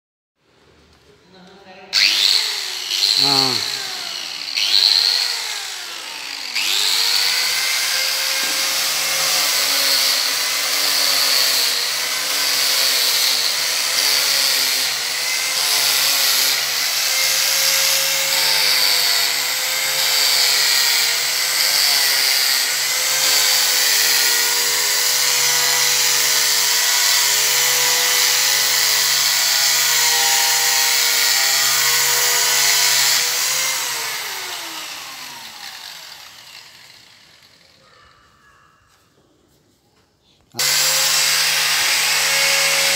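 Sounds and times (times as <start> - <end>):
angle grinder on wood: 2.0 - 37.8, 40.6 - 42.9.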